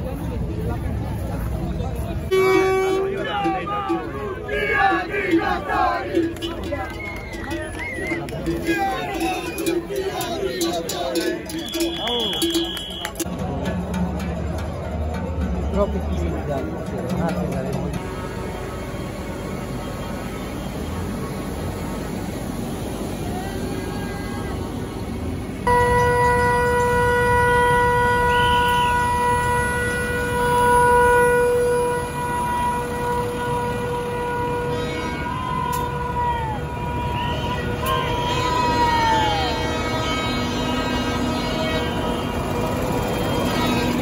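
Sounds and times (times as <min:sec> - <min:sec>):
vehicle horn blast: 0:02.3 - 0:04.0, 0:11.2 - 0:13.3, 0:25.6 - 0:44.0.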